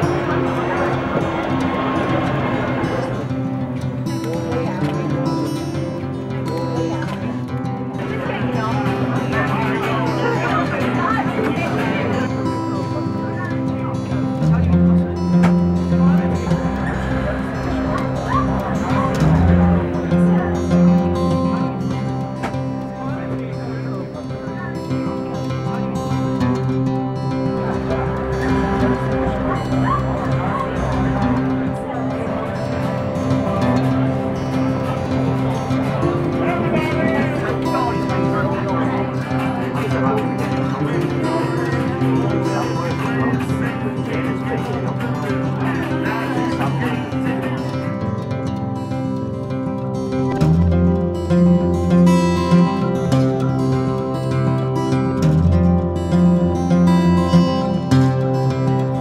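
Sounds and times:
diesel train running: 0.0s - 7.2s, 8.0s - 47.9s
music playing: 0.0s - 59.0s
voices: 0.0s - 59.0s
dog yelping: 17.9s - 19.2s, 29.6s - 30.7s.

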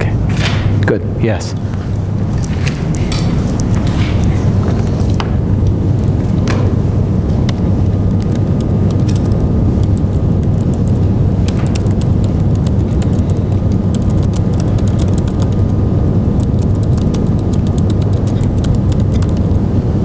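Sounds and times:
low room noise rumble: 0.0s - 20.0s
computer keyboard typing: 7.4s - 19.6s.

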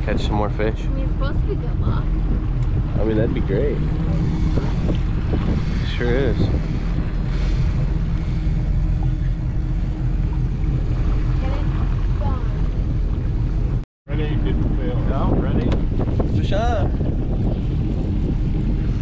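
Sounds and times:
boat engine droning: 0.0s - 19.0s
wind on microphone: 0.0s - 19.0s.

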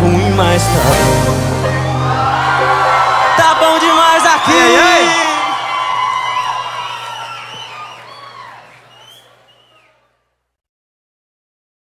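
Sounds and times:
crowd cheering: 1.5s - 10.3s
high whoops and screams: 1.8s - 9.3s.

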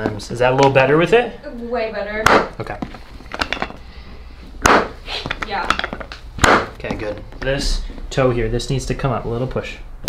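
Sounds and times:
joint cracks and thuds: 4.6s - 7.1s.

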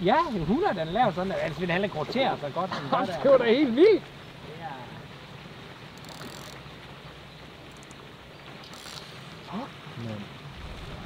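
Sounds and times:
faint wind hiss: 0.0s - 11.0s.

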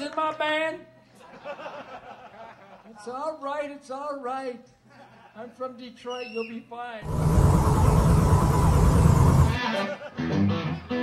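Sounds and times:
hiss: 7.0s - 9.6s.

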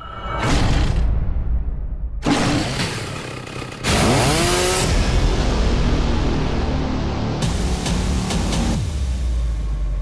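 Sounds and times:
chainsaw starting and revving: 3.0s - 4.9s.

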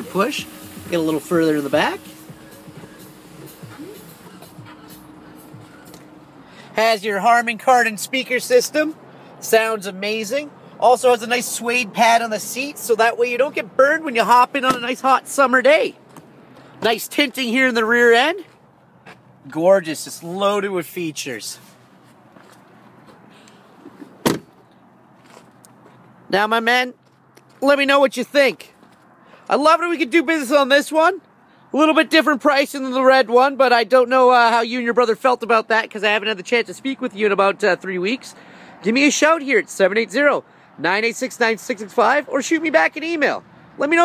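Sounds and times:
faint music in car: 0.0s - 6.4s
car door shutting with thud: 14.7s - 14.9s, 23.9s - 24.5s.

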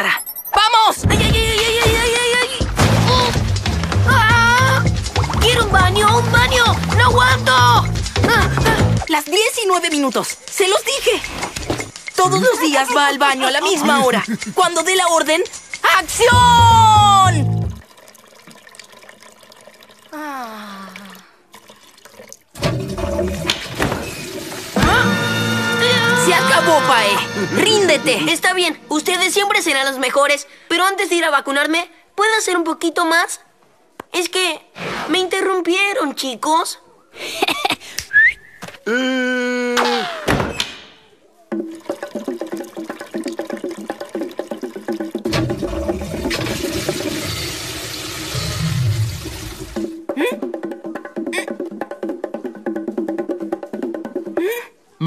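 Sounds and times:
toilet flushing: 21.5s - 28.7s, 41.5s - 50.0s
person crying out ah: 25.8s - 27.6s, 38.9s - 40.3s.

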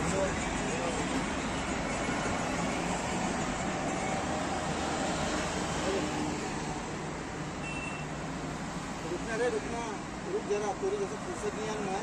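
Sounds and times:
roadside traffic hum: 0.0s - 12.0s.

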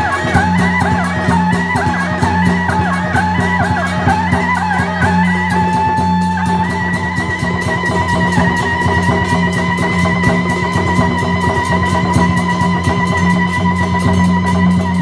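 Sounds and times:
quick percussion beats: 0.0s - 15.0s
wavering sliding melody: 0.0s - 15.0s.

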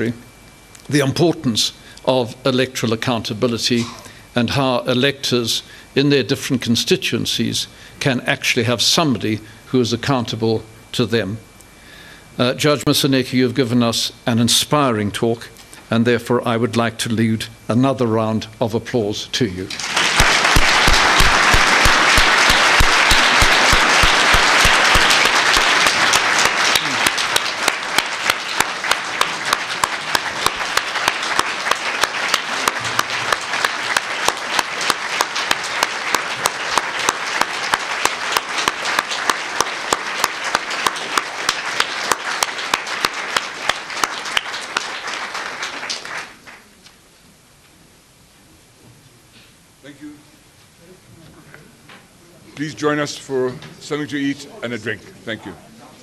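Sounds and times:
audience applauding: 19.7s - 46.7s.

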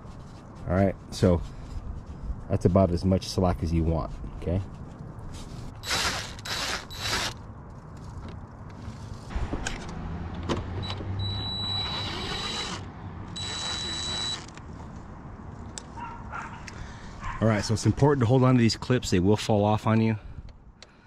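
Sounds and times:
cordless driver motor whine: 5.8s - 7.4s, 10.8s - 14.6s.

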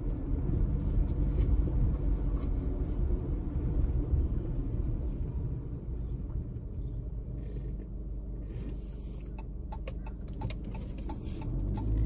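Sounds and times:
car driving slowly: 0.0s - 12.0s.

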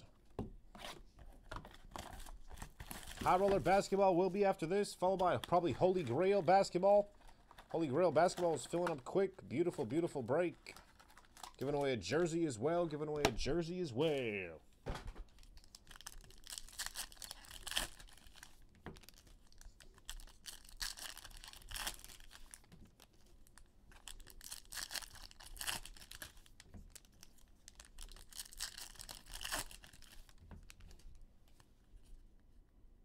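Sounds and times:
foil wrappers tearing and crinkling: 10.6s - 11.8s, 15.3s - 30.8s.

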